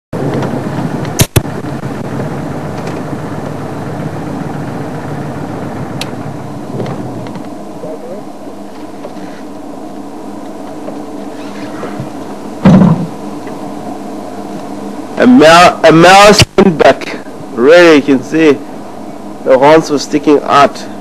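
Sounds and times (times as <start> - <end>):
vehicle engine rumbling: 0.2 - 21.0
sharp clicks: 1.0 - 1.5.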